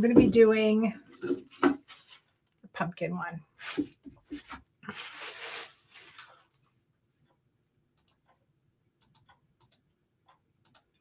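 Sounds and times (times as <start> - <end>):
handling rustle: 3.6 - 6.6.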